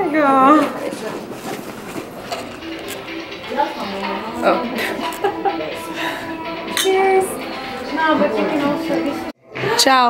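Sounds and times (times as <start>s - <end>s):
murmured voices: 0.0s - 10.0s
background music: 1.9s - 10.0s.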